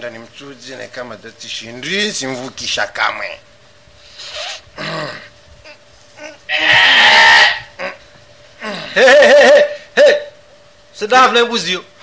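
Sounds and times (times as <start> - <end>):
goat bleating: 6.2 - 8.0.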